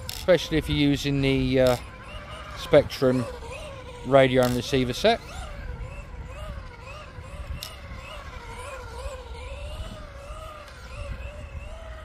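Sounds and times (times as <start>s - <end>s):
toy car electric motor whining: 0.0s - 12.0s.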